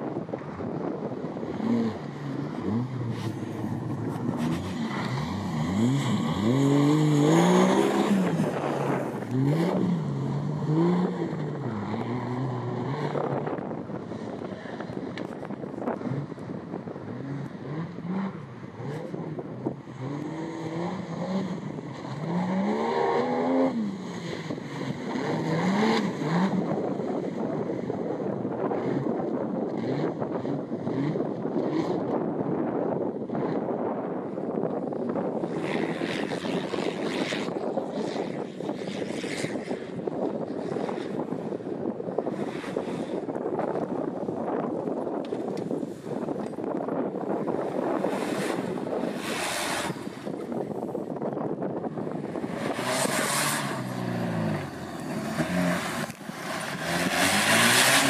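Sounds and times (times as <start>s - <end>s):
off-road vehicle engine revving: 0.3s - 32.7s, 46.2s - 58.0s.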